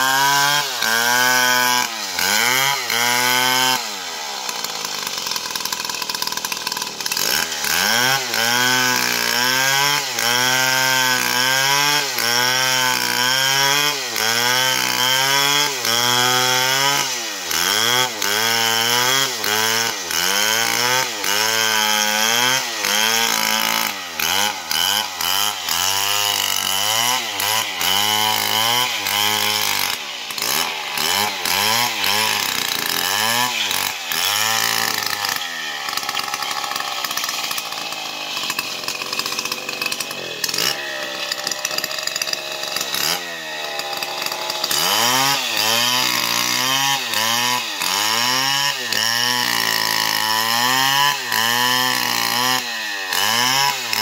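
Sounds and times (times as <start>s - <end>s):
chainsaw cutting through log: 0.0s - 54.0s.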